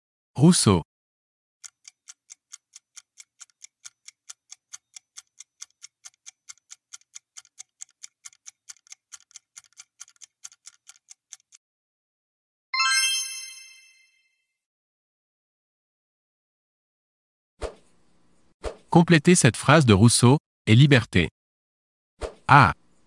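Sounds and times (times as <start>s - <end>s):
bright chime: 12.8s - 14.4s.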